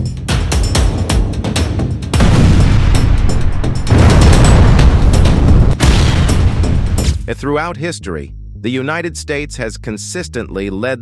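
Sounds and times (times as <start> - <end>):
music: 0.0 - 11.0
explosion booms: 2.2 - 7.3.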